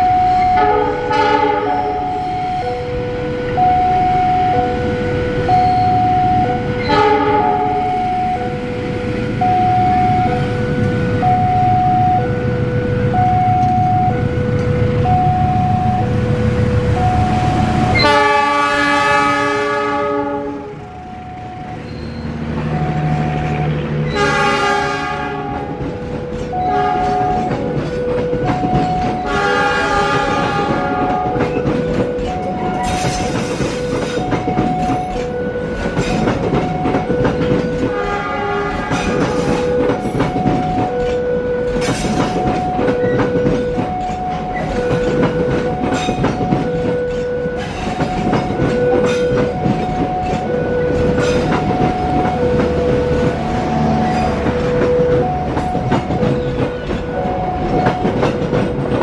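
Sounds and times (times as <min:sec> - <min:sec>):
train horn blasts: 0:00.0 - 0:21.0, 0:21.8 - 0:59.0
train wheels clickety-clack: 0:22.2 - 0:59.0.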